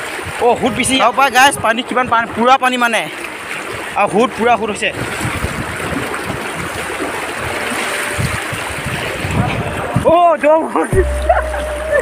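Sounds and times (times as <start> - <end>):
river water rushing over rocks: 0.0 - 10.1
man calling out: 0.4 - 1.7.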